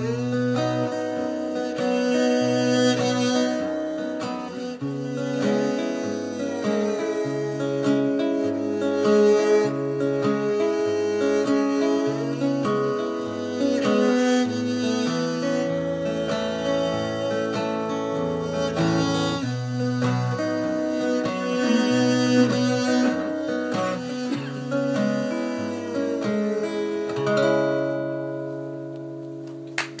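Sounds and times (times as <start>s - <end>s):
violin: 0.0s - 29.0s
acoustic guitar: 0.0s - 30.0s.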